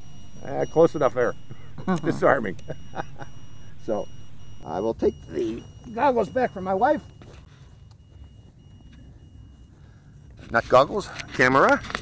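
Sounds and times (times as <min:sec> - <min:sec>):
low rumble: 0:00.0 - 0:04.7
high electronic beeper tone: 0:00.0 - 0:10.2.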